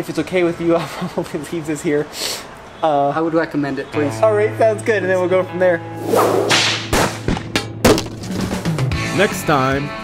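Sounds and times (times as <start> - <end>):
whoosh: 6.0 - 7.2
whip crack: 6.0 - 7.3
short hits: 6.1 - 8.4.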